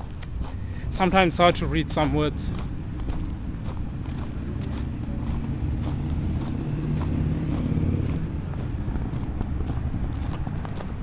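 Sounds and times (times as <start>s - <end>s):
footsteps on gravel: 0.0s - 11.0s
low rumble: 0.0s - 11.0s.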